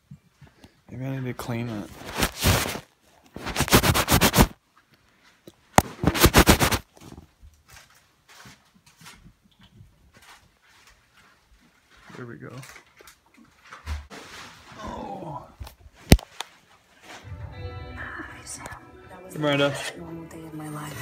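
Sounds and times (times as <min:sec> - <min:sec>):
rubbing against microphone: 0:01.5 - 0:04.6, 0:05.8 - 0:06.9.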